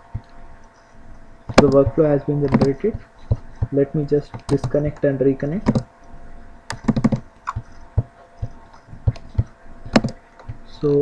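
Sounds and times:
faint steady hum: 0:00.0 - 0:11.0
mouse and keyboard clicks: 0:08.4 - 0:10.6.

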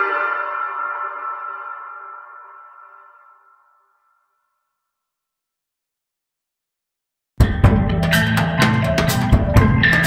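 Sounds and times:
held instrumental chord ringing: 0:00.0 - 0:04.0.

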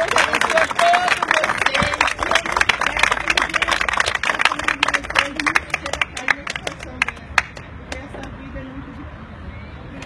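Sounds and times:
hands clapping: 0:00.0 - 0:08.3.

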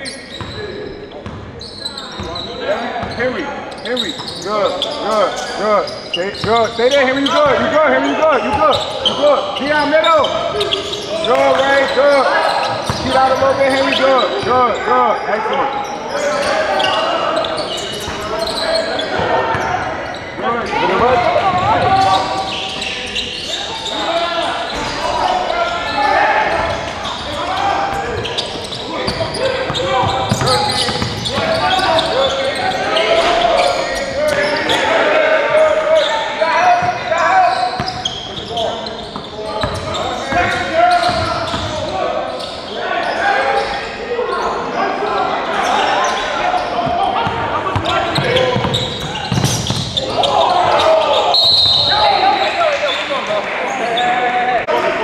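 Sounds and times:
voices calling out: 0:00.0 - 0:55.0.

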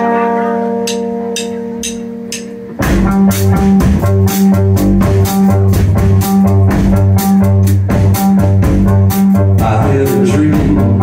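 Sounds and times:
electric guitar chord ringing: 0:00.0 - 0:05.6
bass guitar: 0:00.0 - 0:11.0
cymbal ticks: 0:00.8 - 0:02.6.

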